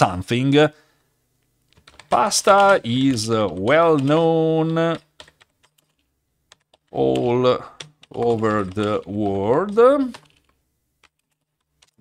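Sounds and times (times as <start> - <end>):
faint keyboard keystrokes: 1.7 - 12.0.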